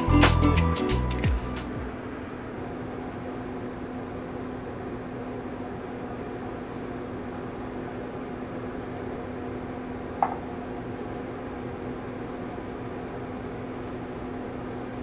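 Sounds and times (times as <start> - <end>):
background music with beat: 0.0 - 2.0
steady low hum: 0.0 - 15.0.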